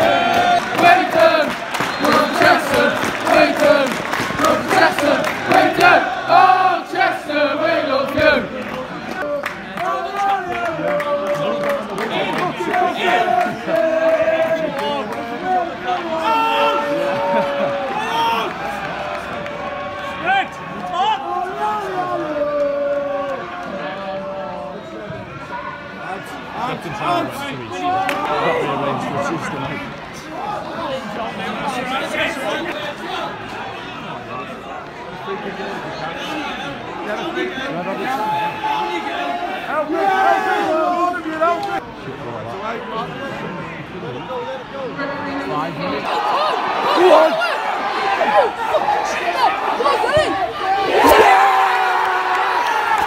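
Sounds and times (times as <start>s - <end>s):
crowd chanting and singing: 0.0s - 38.3s.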